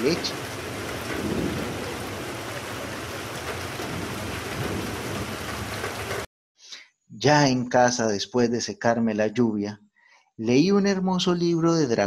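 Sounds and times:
heavy rain: 0.0s - 6.3s
thunder rumbling: 0.0s - 6.3s.

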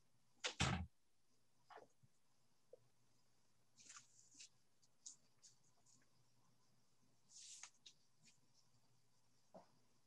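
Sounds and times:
faint scratchy ticks and rustles: 3.8s - 6.2s.

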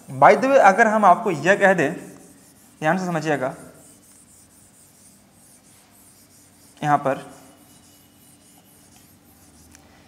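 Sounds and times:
chalk scratching on blackboard: 2.0s - 9.8s.

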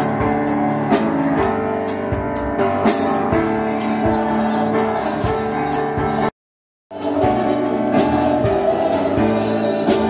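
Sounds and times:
live band playing: 0.0s - 6.3s, 6.9s - 10.0s.

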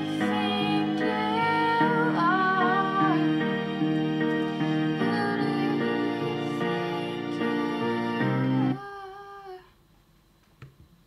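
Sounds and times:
young woman singing: 0.0s - 3.4s, 5.0s - 9.8s
backing music: 0.0s - 8.8s.

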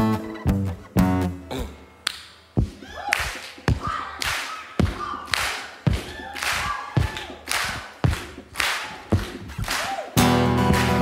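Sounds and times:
hand claps: 3.1s - 11.0s
kick drum thumps: 4.8s - 5.2s, 5.9s - 8.5s.

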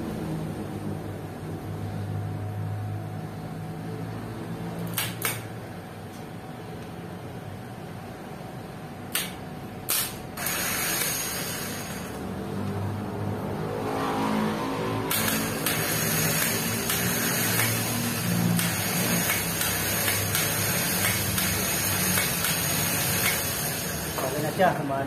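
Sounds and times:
starter motor whirring: 10.4s - 12.2s, 15.1s - 24.6s
starter motor click: 15.1s - 17.9s, 18.6s - 23.6s.

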